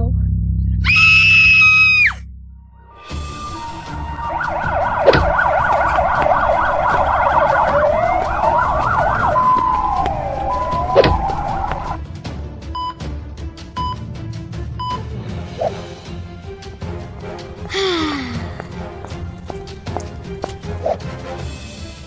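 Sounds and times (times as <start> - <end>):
cartoon siren wailing: 0.8 - 2.2, 3.1 - 12.0.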